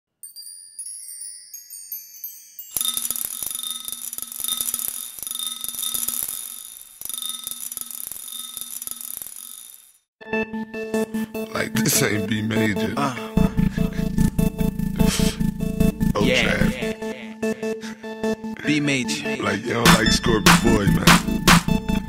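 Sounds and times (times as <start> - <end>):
high tinkling chime: 0.1 - 10.0
glassy clinks: 0.2 - 9.9
ringing tone: 2.6 - 10.0.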